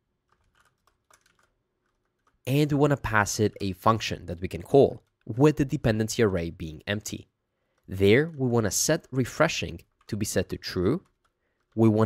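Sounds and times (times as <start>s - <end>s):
faint keyboard typing: 0.0s - 12.0s.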